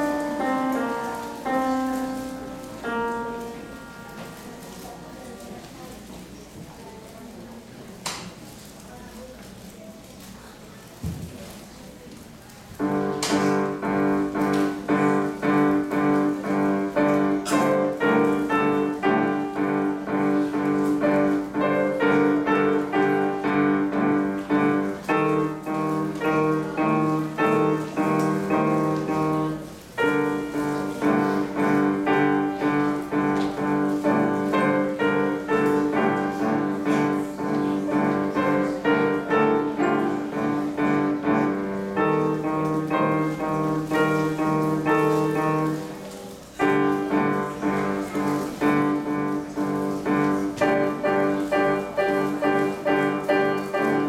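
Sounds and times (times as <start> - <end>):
classical piano piece: 0.0 - 54.0.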